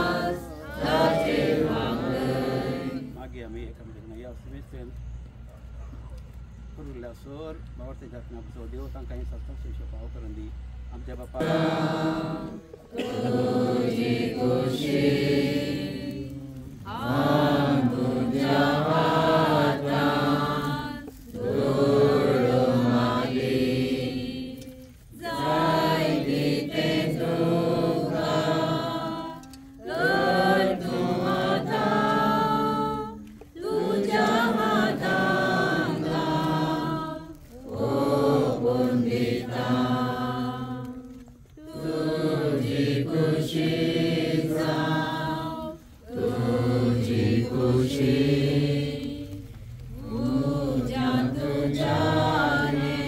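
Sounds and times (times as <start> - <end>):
group singing a hymn: 0.0 - 4.2, 10.9 - 53.0.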